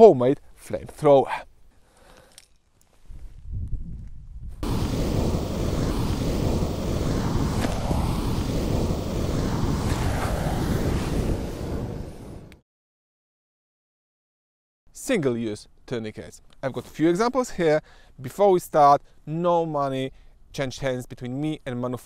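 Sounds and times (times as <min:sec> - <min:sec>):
flamethrower flame rushing: 0:04.6 - 0:12.6
low rumble: 0:04.6 - 0:12.6.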